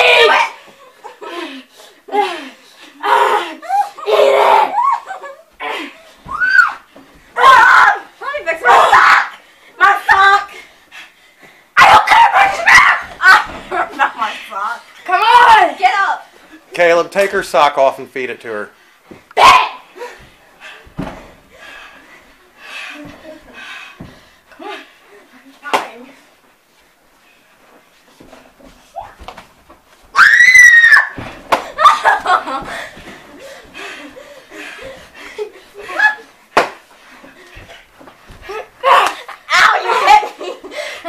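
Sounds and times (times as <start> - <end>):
children's voices and laughter: 0.0 - 6.6, 12.1 - 16.7, 31.7 - 36.5, 38.4 - 41.0
child squealing: 6.3 - 6.8, 30.2 - 31.2
slaps and thumps of bodies: 11.8 - 14.0, 19.1 - 21.5, 25.6 - 26.0, 29.0 - 33.8, 36.5 - 39.7.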